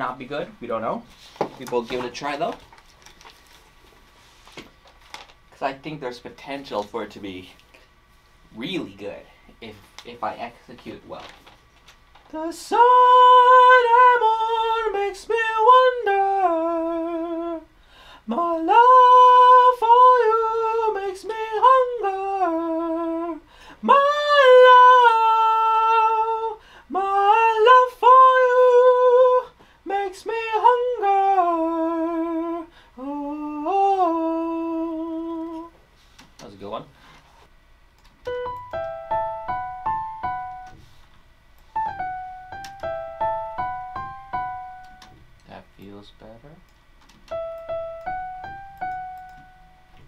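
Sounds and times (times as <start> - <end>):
person singing soul melody: 12.3 - 35.8
keyboard melody: 38.2 - 40.8, 41.8 - 45.2, 47.2 - 50.0.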